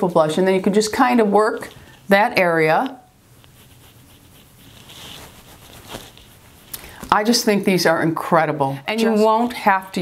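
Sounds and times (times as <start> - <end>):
makeup brush rustling: 3.1 - 7.5.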